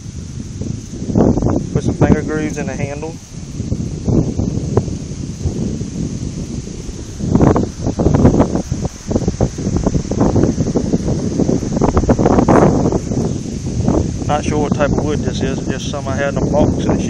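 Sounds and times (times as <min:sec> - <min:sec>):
wind buffeting phone microphone: 0:00.0 - 0:17.0.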